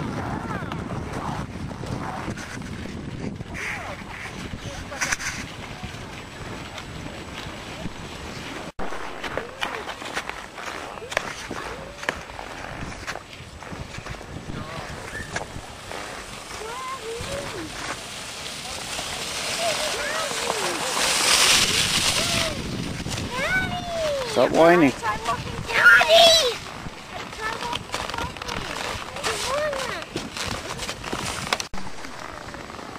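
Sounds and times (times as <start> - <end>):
steady outdoor hiss: 14.2 - 27.5
children calling: 16.5 - 17.9, 18.6 - 22.6, 23.2 - 30.1.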